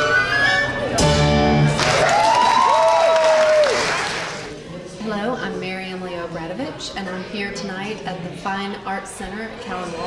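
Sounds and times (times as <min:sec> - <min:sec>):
audience applauding: 0:01.7 - 0:04.6
drawn-out cheers: 0:01.8 - 0:04.4.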